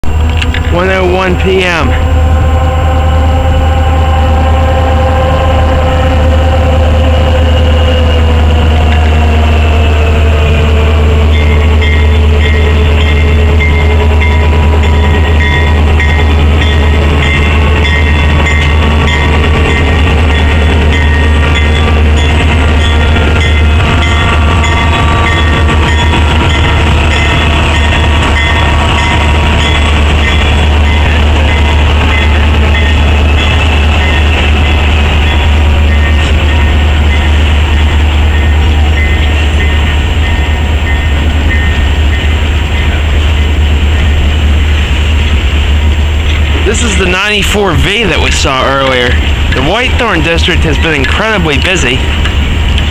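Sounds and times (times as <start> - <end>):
diesel locomotive passing: 0.0 - 52.9
freight train rolling through: 0.0 - 52.9
steady low rumble: 0.0 - 52.9.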